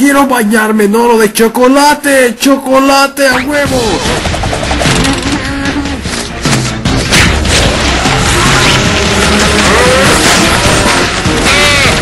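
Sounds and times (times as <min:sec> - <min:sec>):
background music: 0:00.2 - 0:12.0
rapid rattling sound effect: 0:03.6 - 0:05.4.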